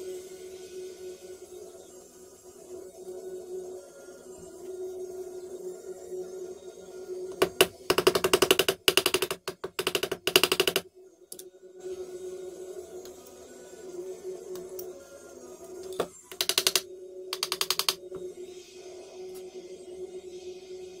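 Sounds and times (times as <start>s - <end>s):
small hammer tapping fret wire: 7.4s - 11.4s, 15.9s - 18.2s.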